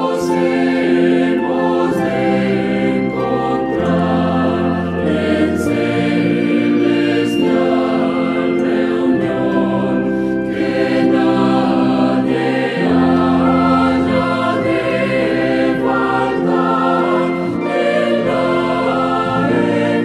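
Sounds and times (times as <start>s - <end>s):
choir singing a slow hymn: 0.0s - 20.0s.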